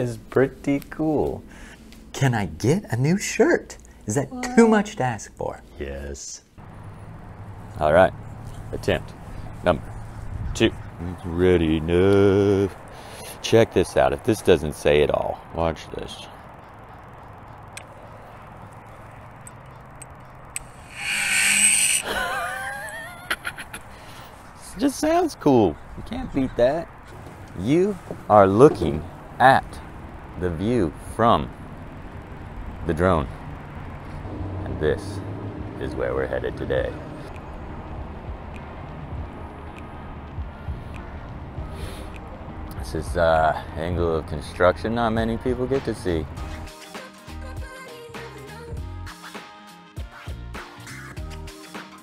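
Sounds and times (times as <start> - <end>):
low rumble outdoor background: 0.0 - 20.9, 22.5 - 46.6
drone whirring burst: 20.6 - 22.7
wavering tones: 20.6 - 23.0.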